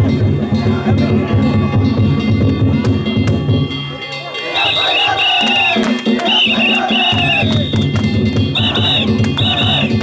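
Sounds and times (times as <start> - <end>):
drumming: 0.0 - 10.0.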